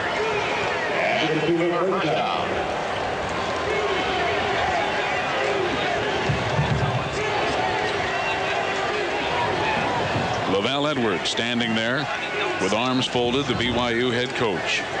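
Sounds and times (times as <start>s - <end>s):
stadium crowd voices: 0.0s - 15.0s.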